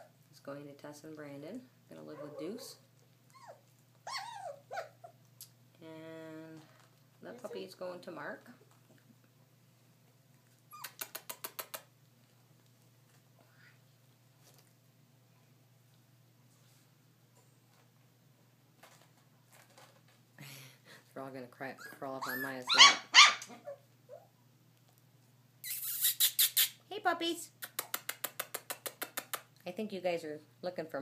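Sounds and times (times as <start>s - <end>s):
puppy squeaking and yipping: 3.3s - 5.2s, 10.7s - 11.8s, 21.8s - 24.3s, 25.6s - 26.8s.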